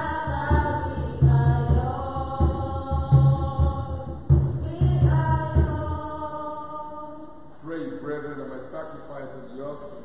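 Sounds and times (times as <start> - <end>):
low pulsing beat: 0.0 - 6.2
voices singing a hymn: 0.0 - 9.9.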